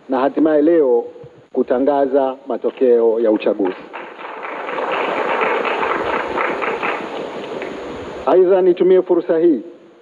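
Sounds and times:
audience applauding: 3.7 - 7.7.

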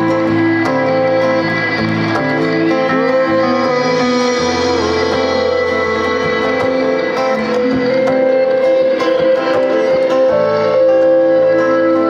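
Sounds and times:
live rock band playing: 0.0 - 12.0
sustained keyboard chords: 0.0 - 12.0.

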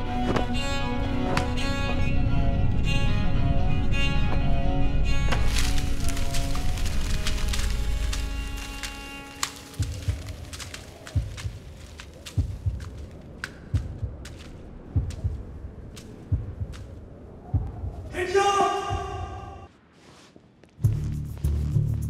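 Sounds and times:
deep thuds: 16.3 - 18.2.

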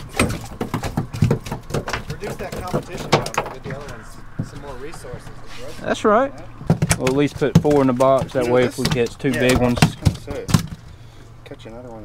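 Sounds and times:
faint voices: 2.0 - 8.9.

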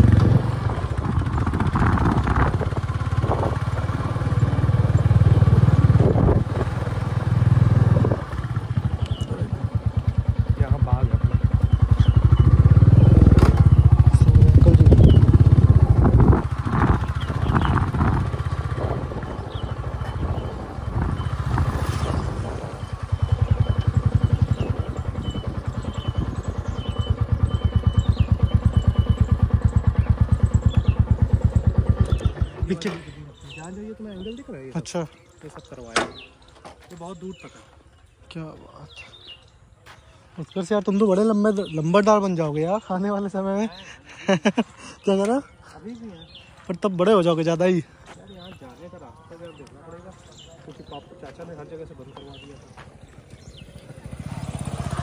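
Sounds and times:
motorcycle engine rumbling: 0.0 - 55.0.

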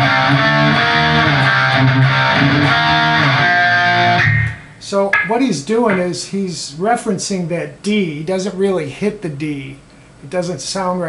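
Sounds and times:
distorted electric guitar riff: 0.0 - 6.0.

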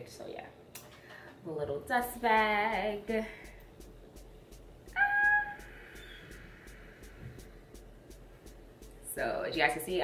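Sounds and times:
woman's high-pitched ah: 4.9 - 6.0.

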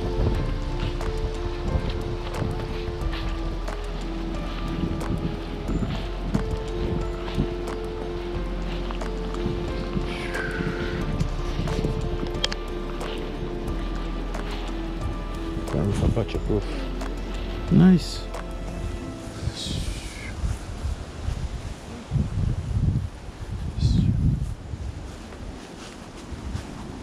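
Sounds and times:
steady percussive beat: 0.0 - 20.0
held synth notes: 0.0 - 21.4.

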